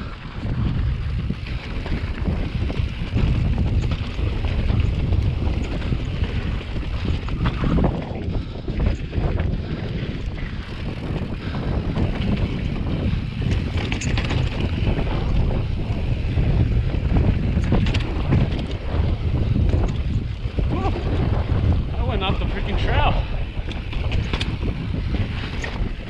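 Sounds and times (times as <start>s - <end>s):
bike tyres rolling on rock: 0.0s - 26.0s
wind buffeting microphone: 0.0s - 26.0s
bike knocks and rattles: 0.4s - 22.0s, 23.4s - 26.0s.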